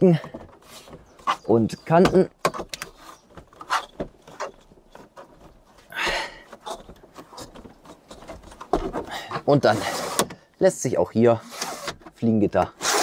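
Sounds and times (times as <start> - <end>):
plastic frame clicks and knocks: 0.2 - 5.6
scraping rustle: 0.2 - 13.0.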